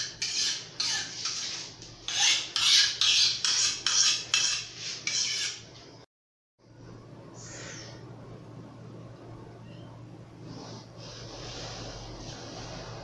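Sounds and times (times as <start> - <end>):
knife scraping on sharpening stone: 0.0 - 5.7.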